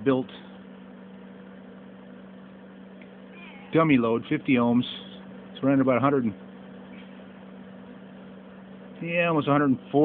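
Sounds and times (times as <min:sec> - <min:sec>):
constant low hum: 0:00.0 - 0:10.0
cooling fans whirring: 0:00.0 - 0:10.0.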